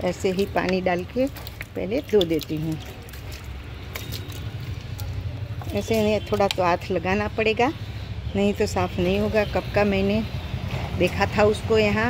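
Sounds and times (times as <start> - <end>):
water splashing down a pipe: 0.0 - 7.0.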